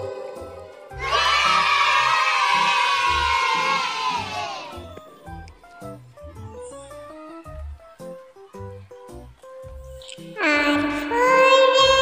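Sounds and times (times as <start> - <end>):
children's song with bass beat: 0.0 - 12.0
children cheering: 0.8 - 4.9.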